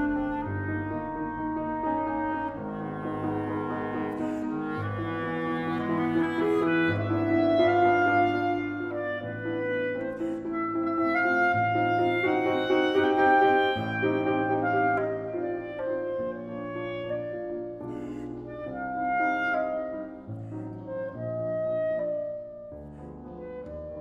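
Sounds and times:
clarinet melody: 0:00.0 - 0:24.0
piano chords: 0:00.0 - 0:24.0.

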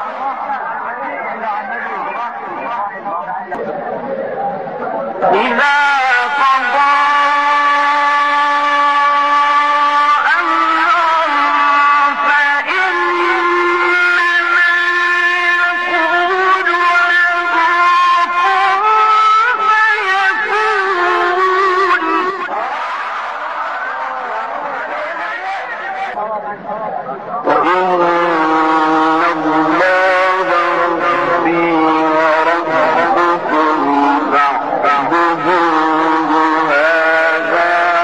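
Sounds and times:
man reciting melodically: 0:00.0 - 0:38.0.

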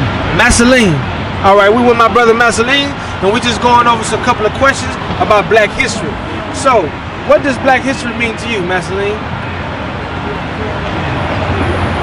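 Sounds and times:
city traffic rumble: 0:00.0 - 0:12.0.

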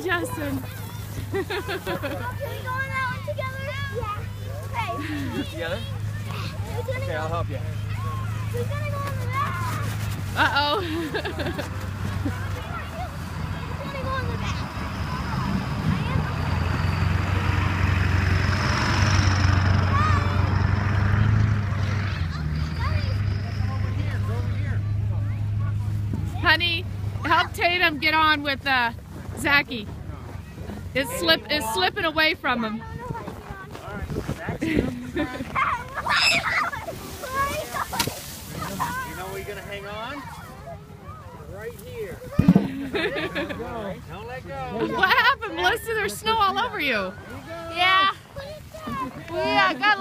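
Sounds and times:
children's voices: 0:00.0 - 0:18.4, 0:19.1 - 0:23.8, 0:30.3 - 0:43.6, 0:44.7 - 0:50.0
distant children shouting: 0:12.5 - 0:23.9, 0:35.6 - 0:39.1.

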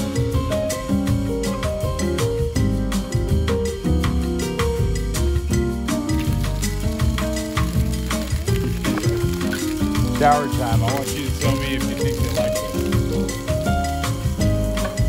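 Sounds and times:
background music with steady beat: 0:00.0 - 0:15.0.

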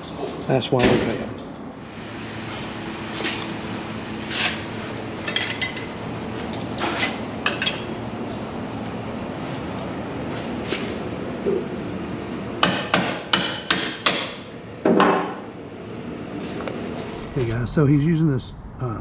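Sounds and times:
hammer striking steel: 0:12.6 - 0:14.4.

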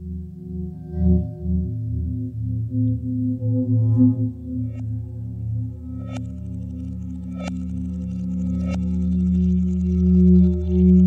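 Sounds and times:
low ringing ambient drone: 0:00.0 - 0:11.0.

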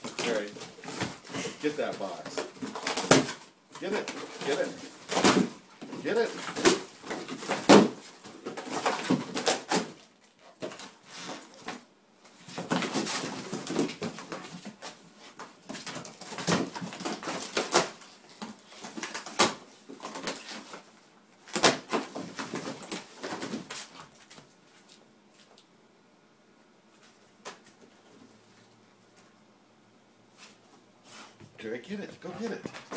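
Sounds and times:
dog tearing cardboard box: 0:00.0 - 0:11.8, 0:12.4 - 0:15.0, 0:15.7 - 0:18.1.

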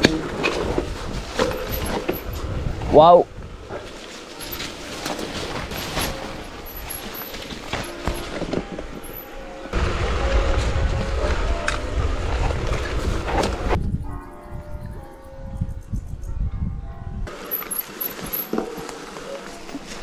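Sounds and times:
wind rumble on microphone: 0:00.0 - 0:03.9, 0:09.7 - 0:17.3
bike tyres and rattling on trail: 0:00.0 - 0:14.5, 0:17.3 - 0:20.0.

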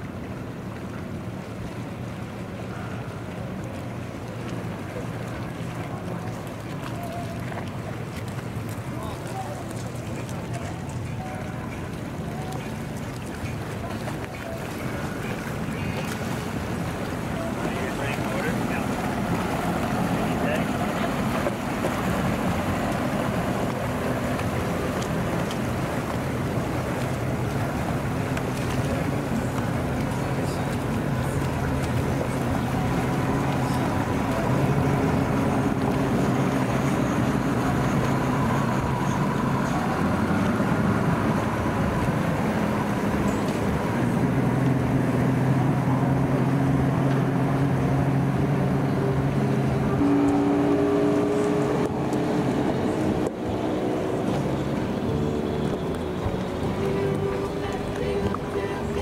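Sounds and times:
outboard motor hum: 0:00.0 - 0:59.0
water washing: 0:00.0 - 0:59.0.

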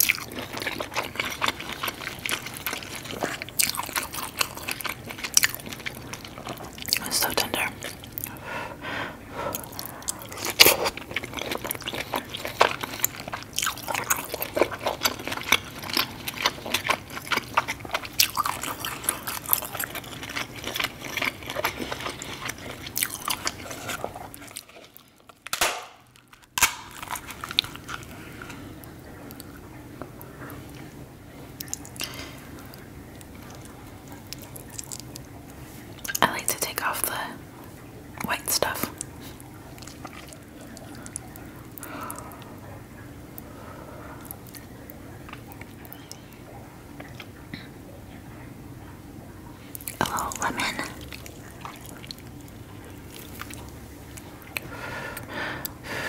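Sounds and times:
wet chewing and smacking: 0:00.0 - 0:08.4, 0:09.5 - 0:56.0.

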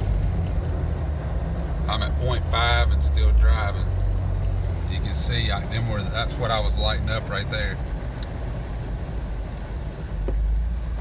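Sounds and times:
car engine and tyre noise: 0:00.0 - 0:11.0.

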